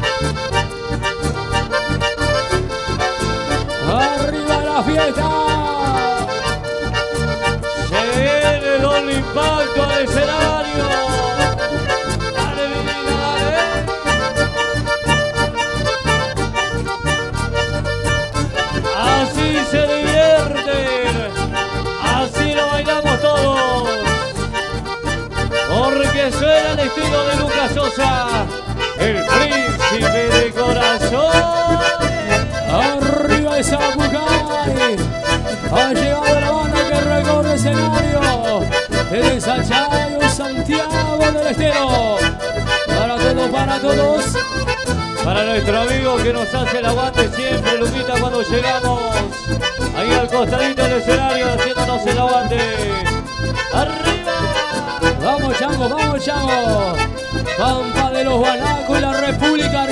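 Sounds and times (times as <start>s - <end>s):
accordion melody: 0.0s - 59.9s
band playing dance beat: 0.0s - 59.9s.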